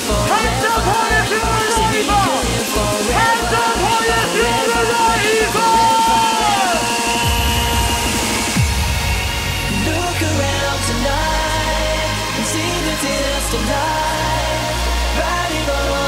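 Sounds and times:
falling synth sweep: 0.0s - 14.5s
gliding synth lead: 0.0s - 15.8s
hardcore dance track: 0.0s - 16.0s.

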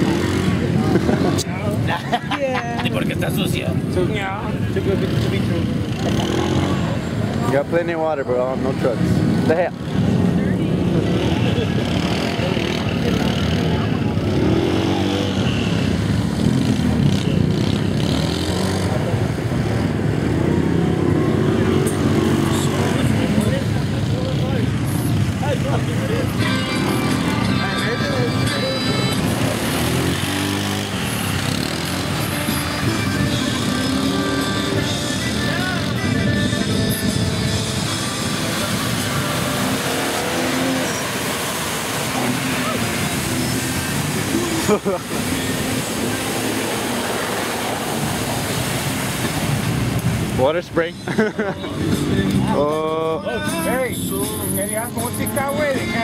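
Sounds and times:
crowd talking: 0.0s - 56.0s
truck engines revving: 0.0s - 56.0s
trucks churning through mud: 0.0s - 56.0s.

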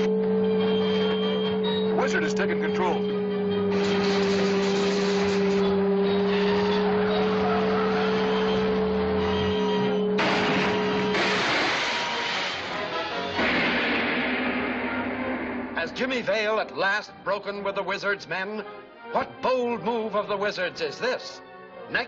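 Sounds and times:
car engine: 0.0s - 16.3s
steady two-note hum: 0.0s - 16.3s
dramatic soundtrack music: 0.0s - 22.0s.

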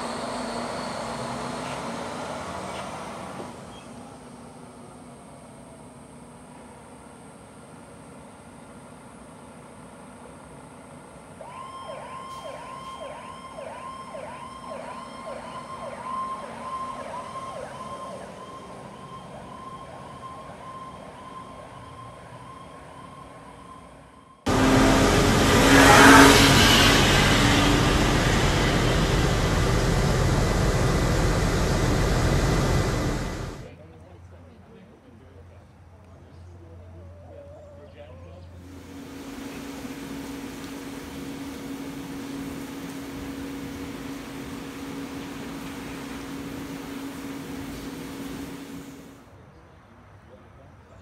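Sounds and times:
fire engine siren yelping: 11.4s - 33.7s, 38.6s - 49.2s
loud rushing noise: 24.5s - 33.7s, 38.6s - 49.2s.

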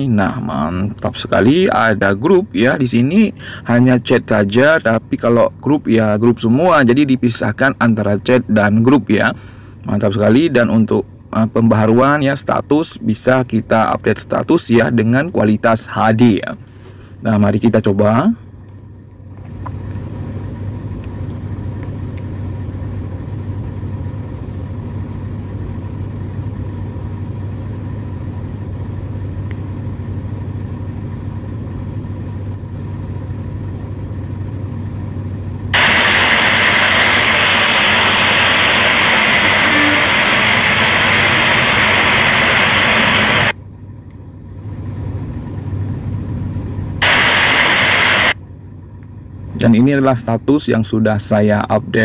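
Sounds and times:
car engine idling: 17.8s - 51.4s.

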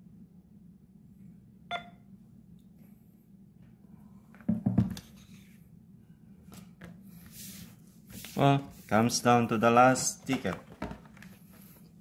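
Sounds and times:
low steady hum: 0.0s - 12.0s
card knocking on table: 4.5s - 5.0s.

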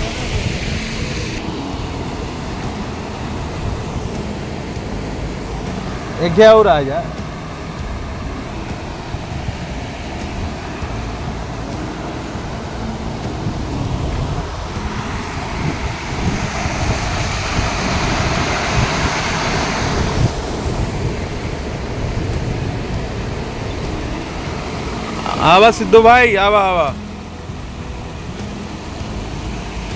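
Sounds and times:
floodwater rushing: 0.0s - 29.9s
wind buffeting microphone: 0.0s - 29.9s.

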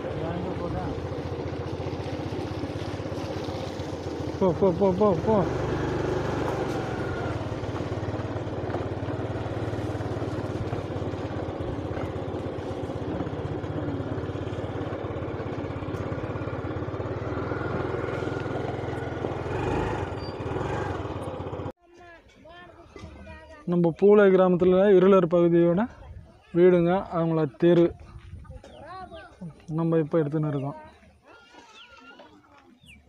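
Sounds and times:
small engine running: 0.0s - 21.7s.

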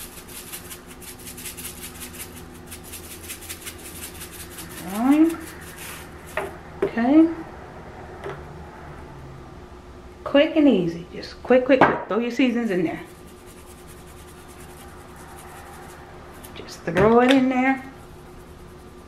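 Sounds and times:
seasoning shaker rattling: 0.0s - 6.6s, 12.4s - 16.8s, 17.4s - 19.0s.

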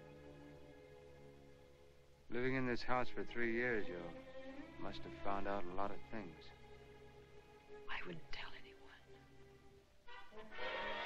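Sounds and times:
quiet orchestral music: 0.0s - 11.0s
soft low speech: 7.8s - 9.2s.

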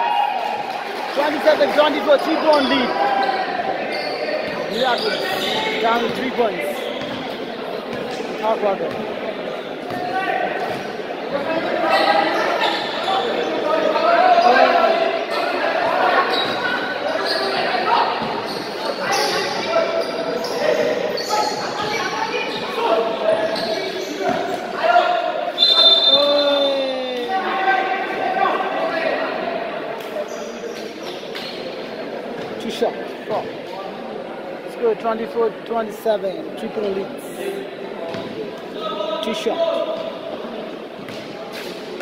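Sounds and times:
players' voices: 0.0s - 42.0s
basketball bouncing on court: 7.0s - 8.0s
short high referee whistle: 25.5s - 26.9s.

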